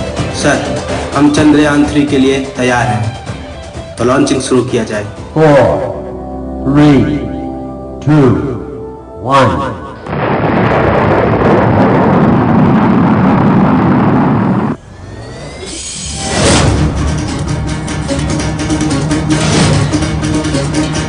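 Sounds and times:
rising whoosh: 0:10.2 - 0:17.1.

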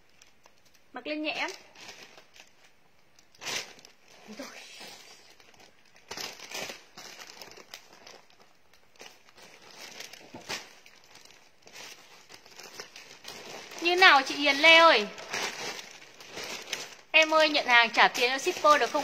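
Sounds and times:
plastic bags crinkling: 0:00.0 - 0:19.0.

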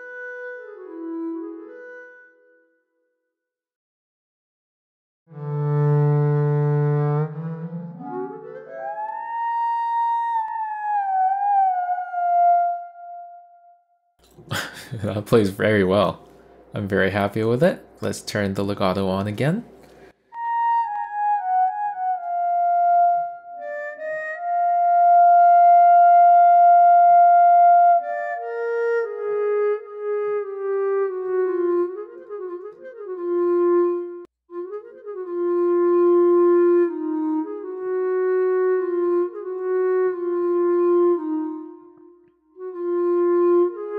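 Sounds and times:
sampled clarinet notes: 0:00.0 - 0:02.8, 0:05.3 - 0:13.9, 0:20.3 - 0:43.9.

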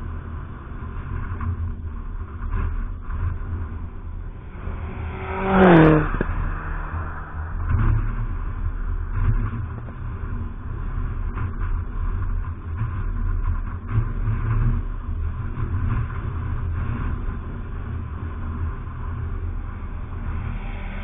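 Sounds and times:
steady low rumble: 0:00.0 - 0:21.0
race car passing at speed: 0:04.2 - 0:09.7, 0:19.4 - 0:21.0.

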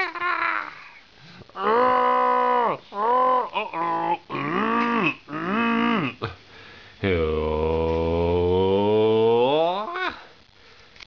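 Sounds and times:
groan tube groaning: 0:01.6 - 0:06.2, 0:07.0 - 0:10.2.

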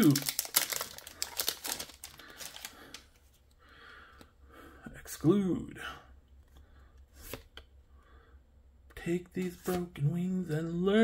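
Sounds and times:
wrapper tearing and crinkling: 0:00.0 - 0:03.0
soft rustles of cards: 0:00.0 - 0:04.4, 0:06.4 - 0:07.7, 0:09.2 - 0:10.8.

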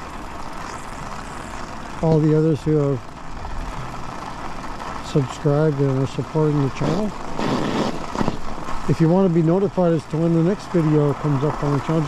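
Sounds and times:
crackles: 0:00.0 - 0:12.0
tyre and wind noise: 0:00.0 - 0:12.0.

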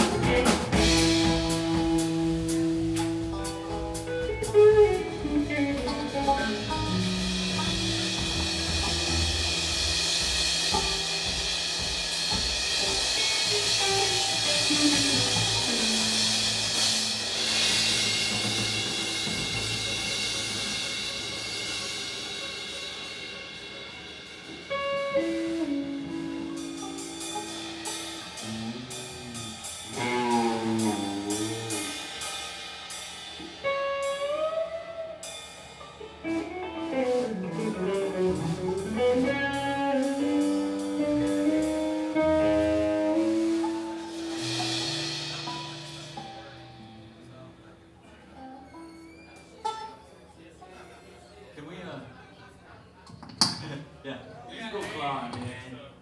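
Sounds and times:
electric guitar string bends: 0:00.0 - 0:11.5, 0:12.3 - 0:21.4, 0:24.6 - 0:32.1, 0:35.9 - 0:50.0
bass guitar: 0:00.0 - 0:50.0
drum kit: 0:00.0 - 0:50.0.

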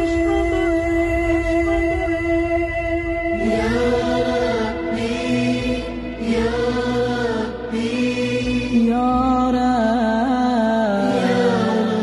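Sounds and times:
person chanting: 0:00.0 - 0:12.0
steady low bed: 0:00.0 - 0:12.0.

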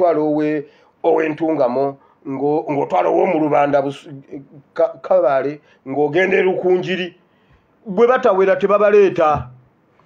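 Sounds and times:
man talking: 0:00.0 - 0:07.2, 0:07.8 - 0:09.6.

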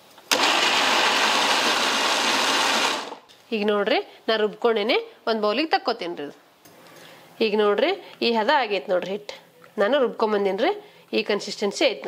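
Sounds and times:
mixer grinder running: 0:00.3 - 0:03.2.

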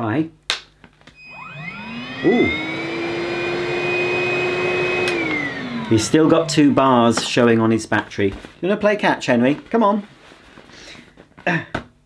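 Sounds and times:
faint soft rustling: 0:07.0 - 0:11.5.

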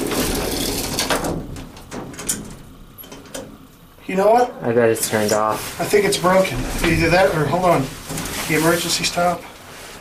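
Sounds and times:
elevator door shutting: 0:06.2 - 0:08.6.

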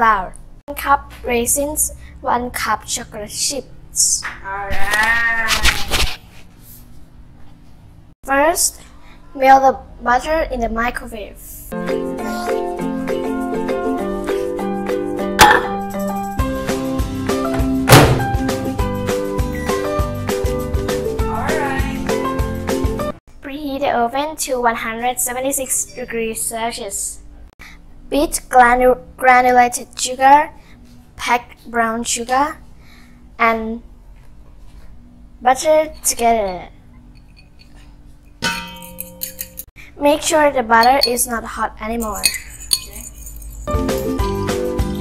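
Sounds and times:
background music: 0:11.7 - 0:23.2, 0:42.2 - 0:45.0
loud thunks: 0:17.5 - 0:18.4
microwave door shutting: 0:17.9 - 0:18.3
metal mixing bowl struck ringing: 0:38.4 - 0:39.6, 0:40.8 - 0:41.2, 0:42.1 - 0:43.7.

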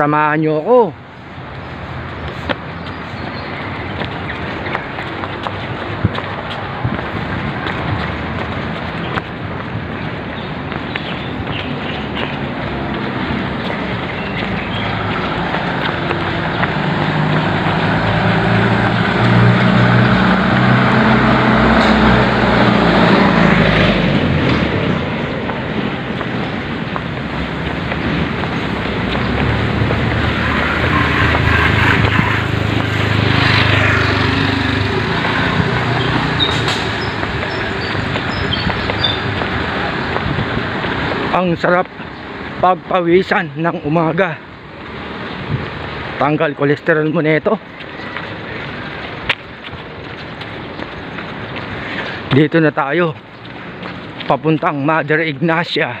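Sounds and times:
vehicle passing: 0:01.0 - 0:56.0
tow truck engine passing: 0:12.4 - 0:41.3.

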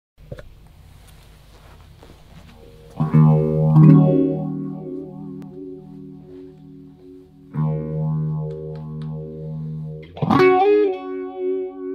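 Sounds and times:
amplifier hum: 0:00.2 - 0:11.9
distorted electric guitar chords: 0:02.0 - 0:11.9.

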